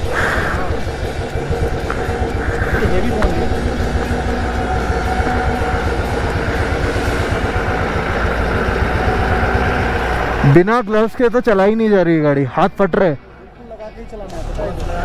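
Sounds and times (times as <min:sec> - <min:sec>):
motorcycle engine idling: 0:00.0 - 0:10.6
truck engine approaching: 0:00.0 - 0:15.0.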